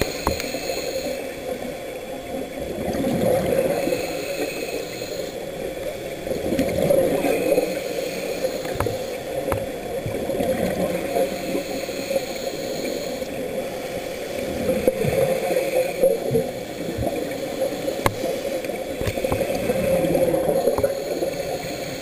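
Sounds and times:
faint clicks: 0.0 - 1.1, 8.4 - 10.2, 18.0 - 19.7
bubbles gurgling underwater: 1.4 - 4.0, 5.9 - 7.8, 8.6 - 11.2.

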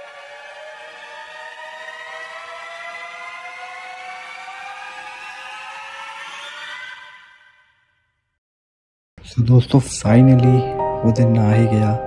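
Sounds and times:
siren-like whine rising in pitch: 0.0 - 8.2.

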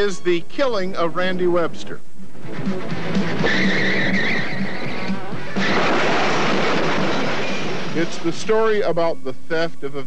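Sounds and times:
soundtrack music: 2.2 - 8.9
tyre squeal: 3.4 - 5.8.

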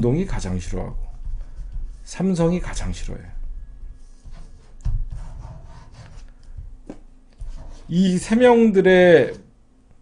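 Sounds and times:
rubbing and scraping handling noise: 0.5 - 8.6.

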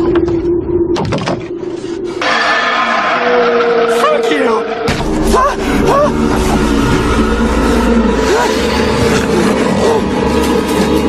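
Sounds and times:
deep rumble: 0.0 - 11.0
held droning tone: 0.0 - 11.0.

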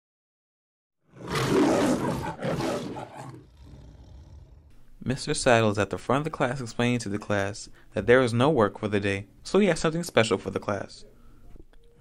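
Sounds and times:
lion roaring: 1.1 - 4.8.

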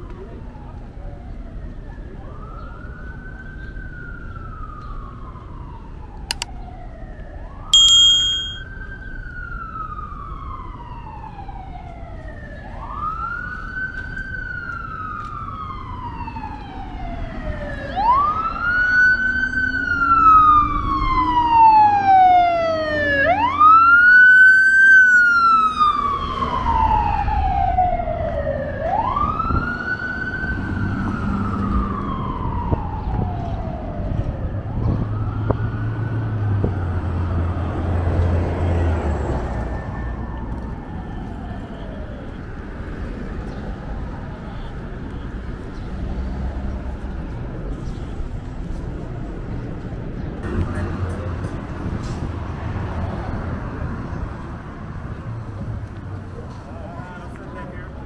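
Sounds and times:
emergency siren wailing: 0.0 - 7.7, 8.6 - 45.6
bicycle bell ding: 7.8 - 8.7.

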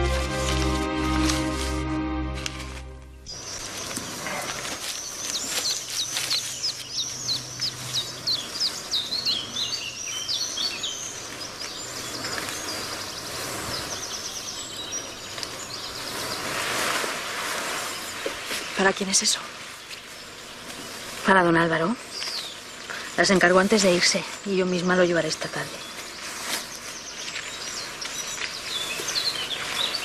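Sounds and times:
outdoor hiss: 0.0 - 30.0
small birds chirping: 3.0 - 30.0
bird trill: 3.1 - 16.6.

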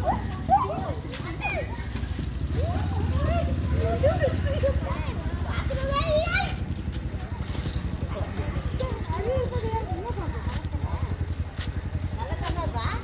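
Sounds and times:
low engine throbbing: 0.0 - 13.0
people talking: 0.0 - 13.0.

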